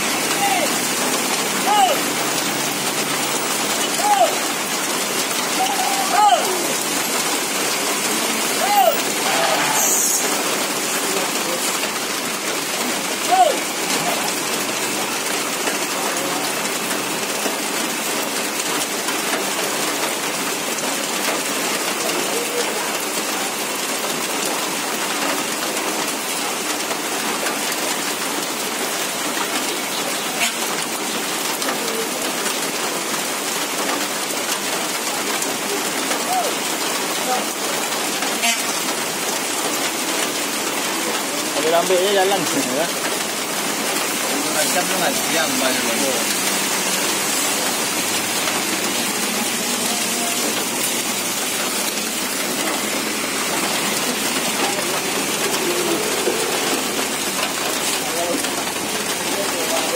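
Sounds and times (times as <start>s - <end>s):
heavy rain on a road: 0.0s - 59.9s.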